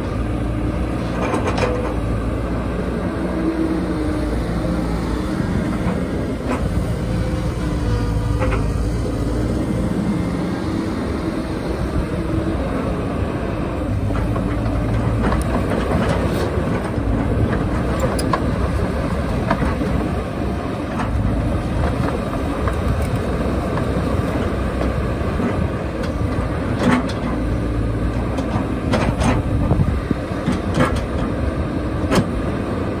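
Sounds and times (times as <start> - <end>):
excavator diesel engine running: 0.0 - 33.0.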